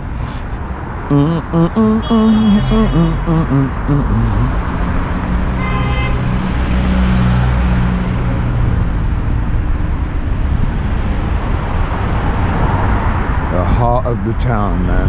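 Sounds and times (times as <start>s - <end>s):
road traffic rumble: 0.0s - 15.0s
short high-pitched tone: 1.1s - 4.4s
nearby engine drone: 1.1s - 5.5s.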